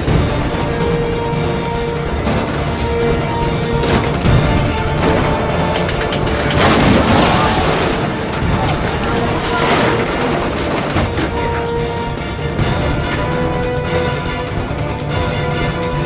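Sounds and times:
orchestral score: 0:00.0 - 0:16.0
crashing effects: 0:02.0 - 0:11.8.

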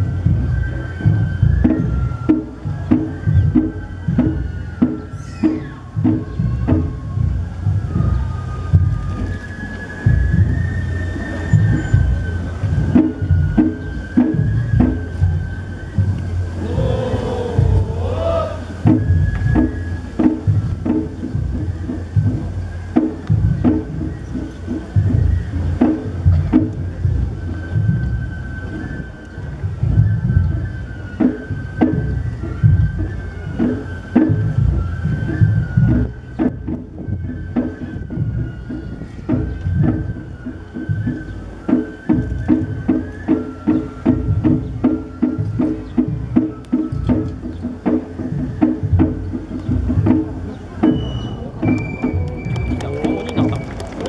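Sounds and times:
bamboo flute high notes: 0:00.0 - 0:54.0
regular drum beats: 0:00.0 - 0:54.0.

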